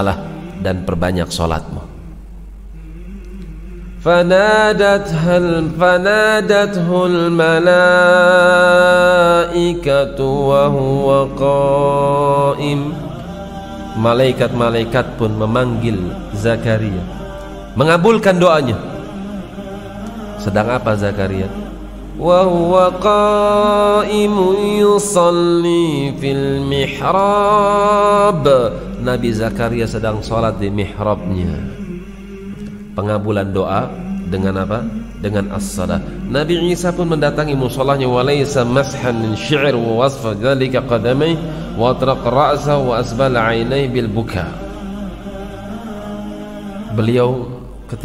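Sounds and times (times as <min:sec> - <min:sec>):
man chanting melodic recitation: 0:00.0 - 0:02.2, 0:02.8 - 0:48.0
faint higher music layer: 0:00.0 - 0:48.0
low steady drone: 0:00.0 - 0:48.0.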